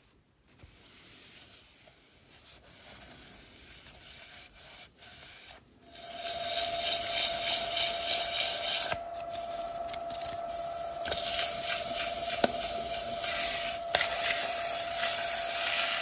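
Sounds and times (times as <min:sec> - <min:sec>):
cloth rubbing on wooden bowl: 0:00.0 - 0:08.8
lathe motor whine: 0:06.0 - 0:16.0.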